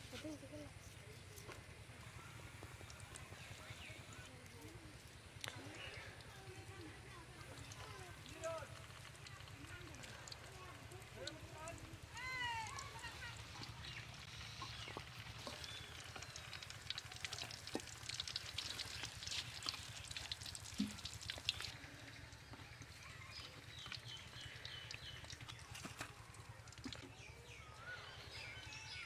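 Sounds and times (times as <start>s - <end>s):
faint crackling of frying in oil: 0.2s - 28.0s.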